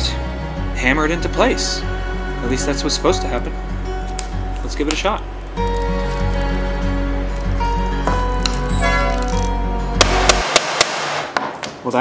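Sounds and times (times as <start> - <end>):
background music: 0.0 - 11.4.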